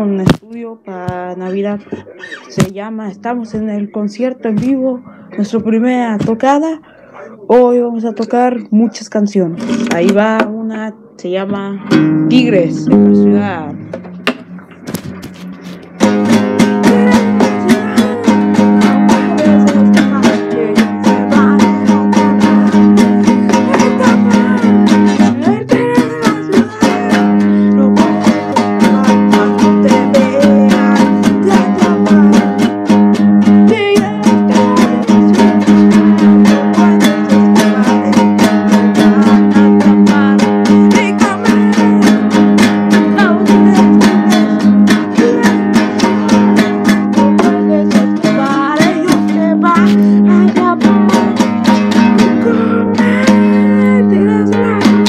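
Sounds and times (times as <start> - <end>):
band playing with strummed guitar: 1.1 - 7.0, 9.6 - 10.6, 11.8 - 55.0.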